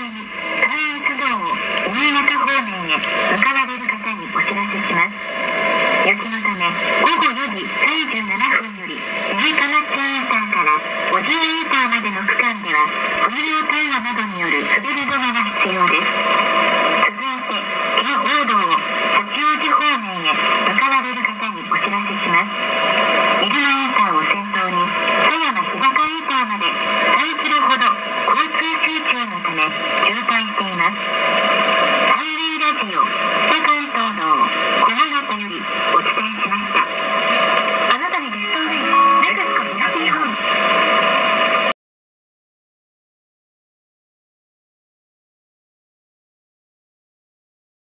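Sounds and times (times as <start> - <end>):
person speaking over radio: 0.0 - 5.3, 5.9 - 16.2, 16.9 - 31.1, 32.0 - 40.7
radio hiss and hum: 0.0 - 41.8.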